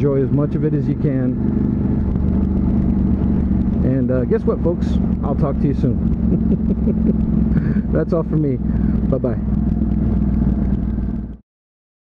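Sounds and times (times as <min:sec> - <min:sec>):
motorcycle engine running: 0:00.0 - 0:11.4
wind and road noise: 0:00.0 - 0:11.4.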